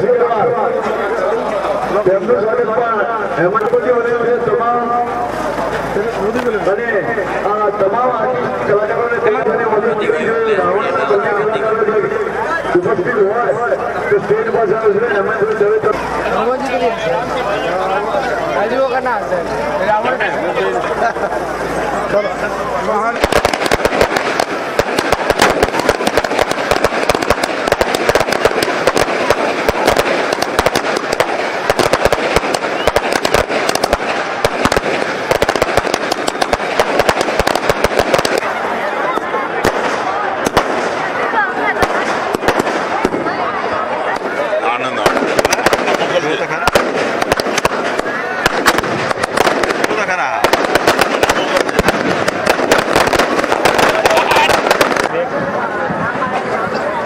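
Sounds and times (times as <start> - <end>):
fireworks crackling: 0.0 - 57.0.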